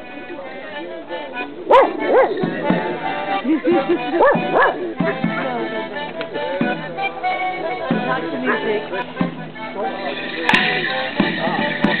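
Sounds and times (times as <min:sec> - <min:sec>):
accordion playing a tune: 0:00.0 - 0:12.0
dog barking: 0:01.7 - 0:02.4, 0:04.2 - 0:04.8.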